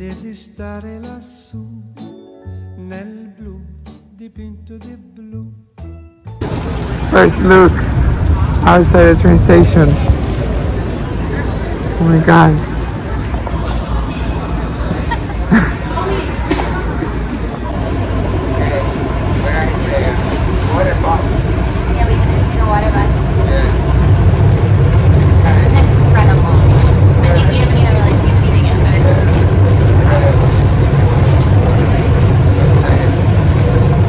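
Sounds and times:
boat engine rumbling: 0:06.4 - 0:34.0
faint voices: 0:06.9 - 0:34.0.

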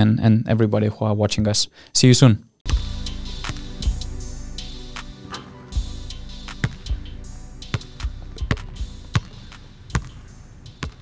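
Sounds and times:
basketball bouncing on hard floor: 0:09.9 - 0:10.1, 0:10.8 - 0:11.0.

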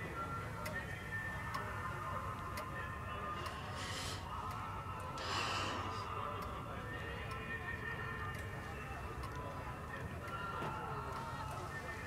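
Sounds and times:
mantel clock ticking: 0:04.3 - 0:05.2, 0:07.2 - 0:11.2.

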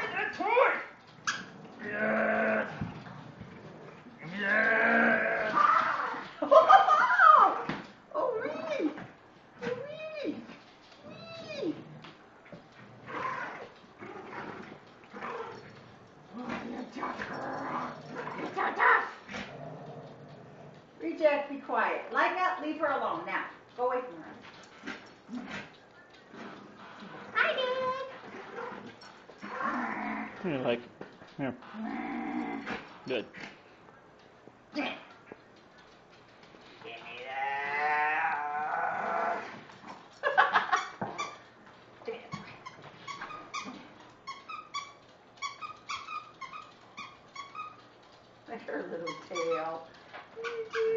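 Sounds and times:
small dog growling: 0:01.2 - 0:06.4, 0:10.3 - 0:21.0, 0:24.7 - 0:30.8, 0:31.4 - 0:33.6, 0:37.0 - 0:40.1.

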